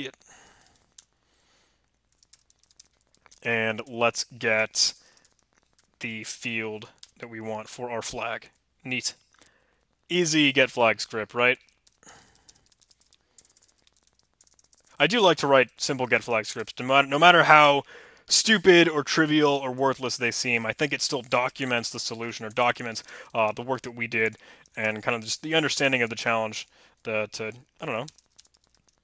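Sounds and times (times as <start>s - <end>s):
faint clicks: 0.0s - 6.2s, 11.6s - 16.8s, 19.8s - 29.0s
faint keyboard keystrokes: 1.8s - 3.5s, 11.6s - 15.1s, 20.4s - 29.0s.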